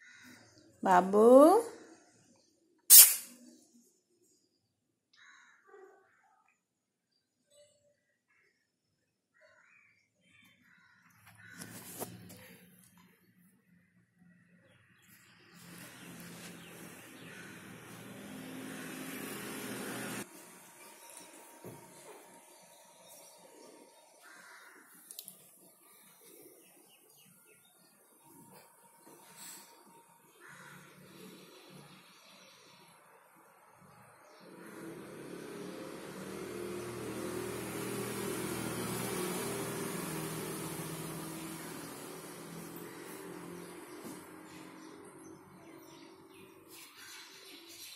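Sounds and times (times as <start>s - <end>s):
vehicle engine passing by: 15.5s - 22.6s, 33.9s - 46.4s
mechanical hum with rushing: 15.7s - 22.8s, 34.4s - 44.8s.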